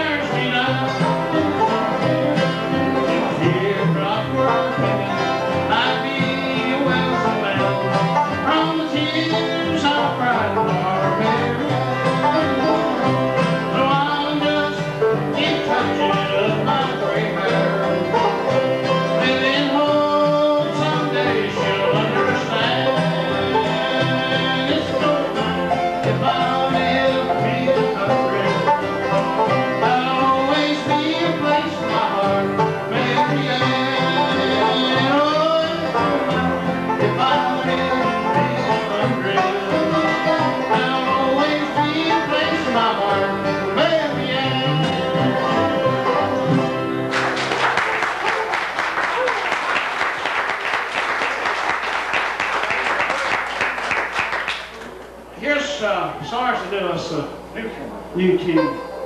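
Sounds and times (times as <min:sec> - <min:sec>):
person singing lead vocal: 0:00.0 - 0:02.3, 0:03.0 - 0:11.7, 0:13.6 - 0:17.9, 0:19.1 - 0:28.8, 0:29.7 - 0:46.1
banjo: 0:00.0 - 0:49.0, 0:58.0 - 0:59.0
bluegrass band playing: 0:00.0 - 0:59.0
audience applause: 0:47.1 - 0:55.1.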